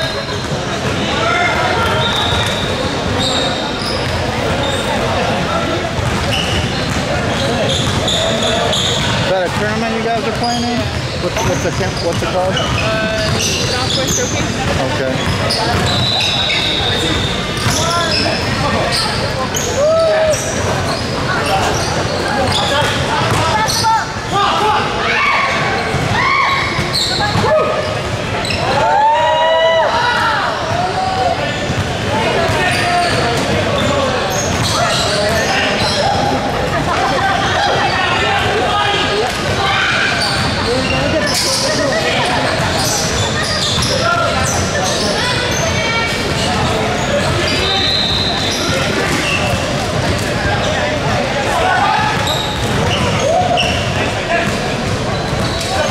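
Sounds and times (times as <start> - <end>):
players calling out: 0.0 - 55.9.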